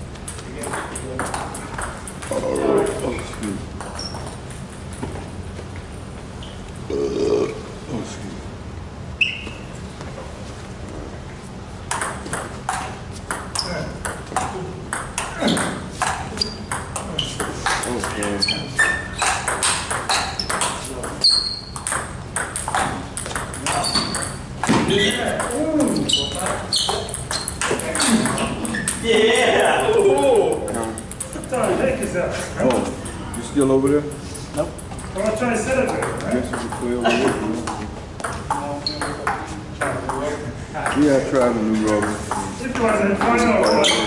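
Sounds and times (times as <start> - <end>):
table tennis ball bouncing: 0.2 - 5.1, 11.8 - 41.1, 42.0 - 43.5
person vocal sound: 6.9 - 7.7
table tennis ball clicking: 30.3 - 32.1.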